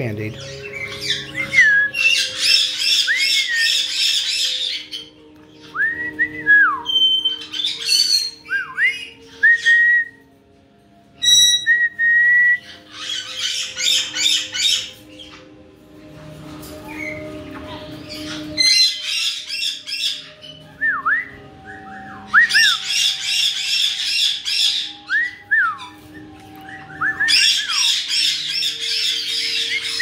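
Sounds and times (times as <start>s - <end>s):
parrots squawking: 0.3s - 5.9s, 6.8s - 9.8s, 11.2s - 11.7s, 12.6s - 15.7s, 16.6s - 20.8s, 21.4s - 30.0s
parrot whistles swooping: 18.2s - 30.0s.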